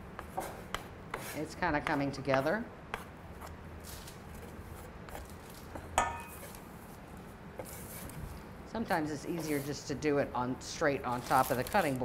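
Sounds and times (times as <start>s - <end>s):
kitchenware clink: 6.0s - 6.4s.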